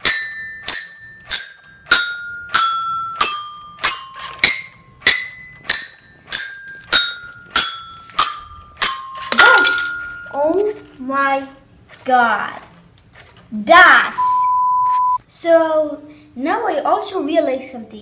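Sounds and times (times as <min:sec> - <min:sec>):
toy xylophone notes: 0:00.0 - 0:10.4.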